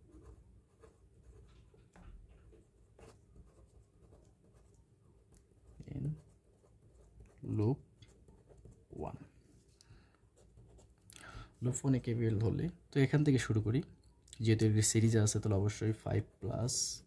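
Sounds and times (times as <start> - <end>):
pen scratching on paper: 0.0 - 8.9, 10.4 - 11.0.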